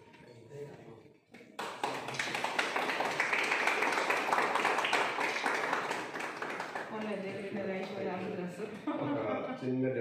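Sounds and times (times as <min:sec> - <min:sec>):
people clapping: 0:01.3 - 0:08.6.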